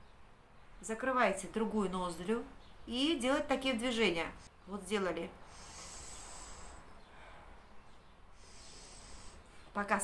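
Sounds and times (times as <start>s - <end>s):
hissing nose sniff: 5.5s - 6.9s, 8.4s - 9.6s.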